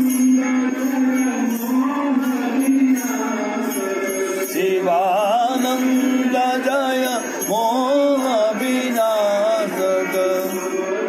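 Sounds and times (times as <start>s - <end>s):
light jingling percussion: 0.0s - 11.0s
person singing devotional song: 0.0s - 11.0s.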